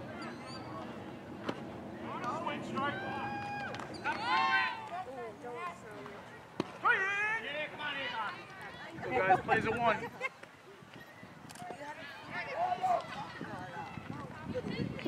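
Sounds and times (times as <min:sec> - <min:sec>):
people shouting across a field: 0:02.8 - 0:05.0.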